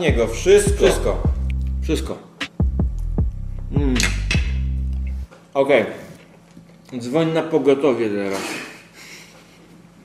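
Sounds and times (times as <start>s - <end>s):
plucked notes over bass: 0.0s - 5.3s.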